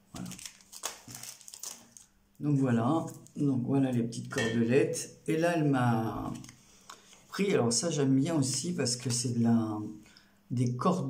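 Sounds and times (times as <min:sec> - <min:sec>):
plastic bag crinkling: 0:00.0 - 0:02.2.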